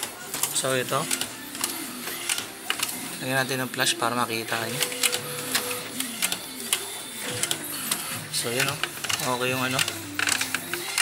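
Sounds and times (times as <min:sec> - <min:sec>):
printer carriage whirring: 0:00.0 - 0:11.0
printer clicks: 0:04.6 - 0:11.0.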